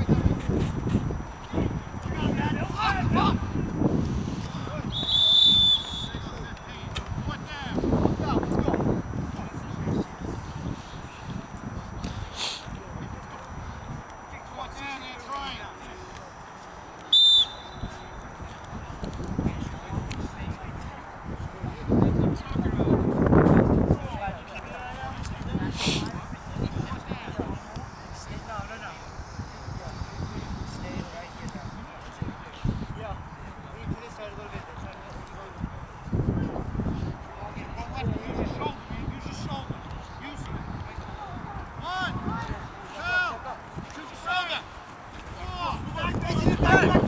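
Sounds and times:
wind rumbling on microphone: 0.0s - 15.2s, 17.6s - 47.0s
distant shouting players: 4.4s - 7.8s, 14.2s - 19.0s
shrill referee's whistle: 4.9s - 6.4s, 17.1s - 18.1s.

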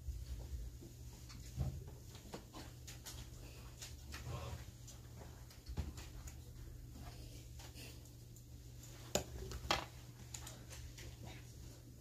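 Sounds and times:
small movement sounds: 0.0s - 12.0s.

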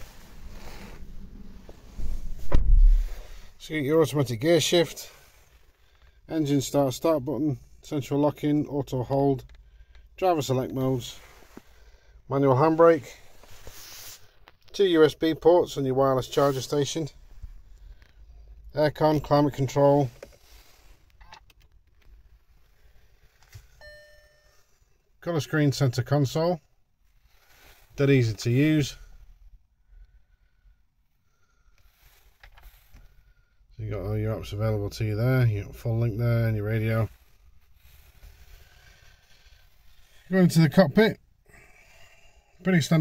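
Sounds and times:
electronic chime: 23.8s - 24.6s.

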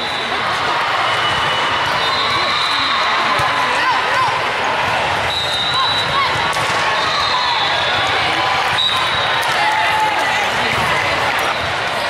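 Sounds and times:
crowd chatter: 0.0s - 12.0s
volleyball hits and bounces: 3.2s - 12.0s
whistle blasts: 5.3s - 6.2s, 8.7s - 9.4s.

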